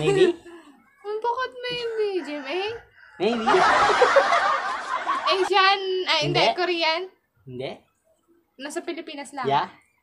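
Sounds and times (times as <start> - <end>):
man and woman laughing: 3.3 - 5.5.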